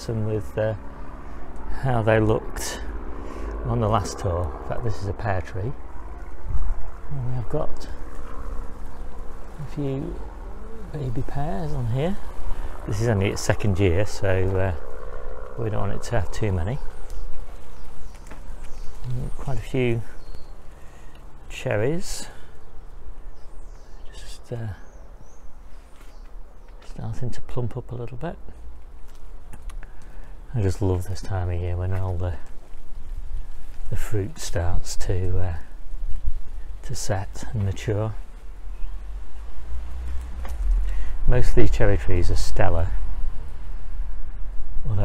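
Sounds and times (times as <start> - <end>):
low rumble: 0.0 - 24.3, 28.3 - 45.0
faint clicks: 28.8 - 30.4
camera handling rumble: 29.0 - 30.1.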